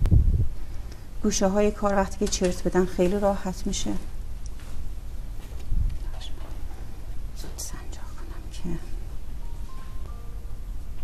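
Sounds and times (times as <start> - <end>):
low steady hum: 0.0 - 11.0
person whispering: 6.0 - 6.8, 7.4 - 9.1.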